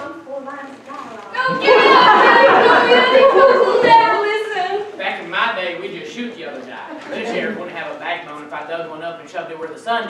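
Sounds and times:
many voices talking: 0:00.0 - 0:10.0.

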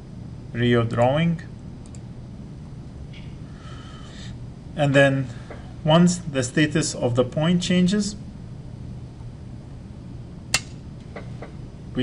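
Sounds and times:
faint low hum: 0:00.0 - 0:12.0
toggle switch click: 0:10.5 - 0:10.8.

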